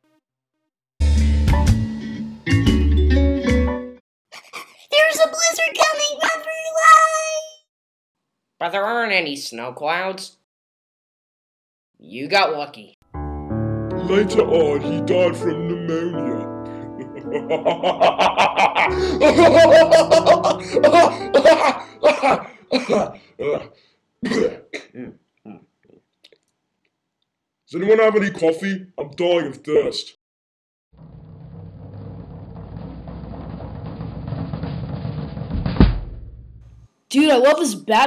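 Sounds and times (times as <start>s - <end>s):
person laughing: 16.8s - 23.6s.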